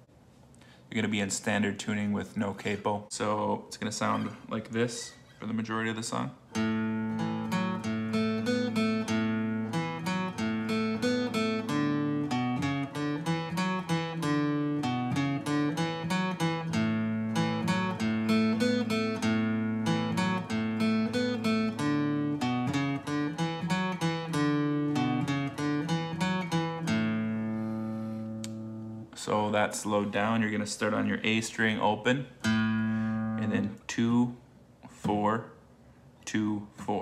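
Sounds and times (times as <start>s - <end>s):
acoustic guitar riff: 6.5s - 33.8s.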